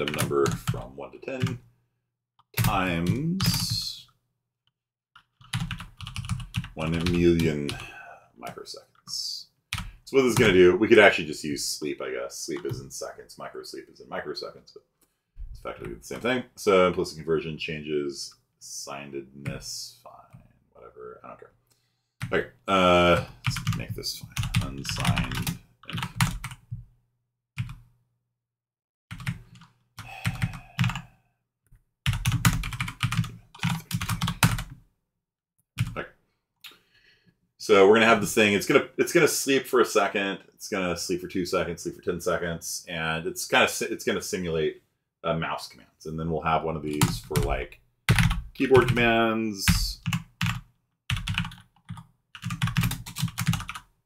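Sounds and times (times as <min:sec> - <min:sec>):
typing on computer keyboard: 0:05.2 - 0:07.9, 0:23.5 - 0:26.6, 0:29.1 - 0:31.1, 0:32.1 - 0:34.7, 0:50.0 - 0:53.9.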